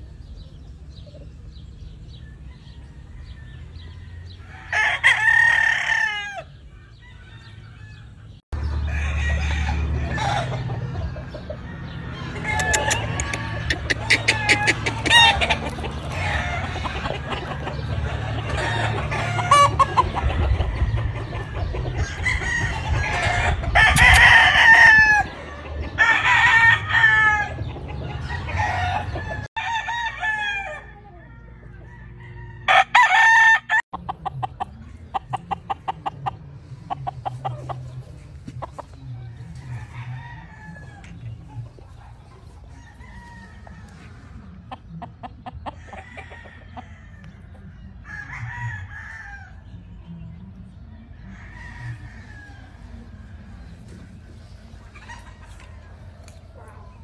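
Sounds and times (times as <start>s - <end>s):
roosters crowing and clucking: 0.0s - 57.0s.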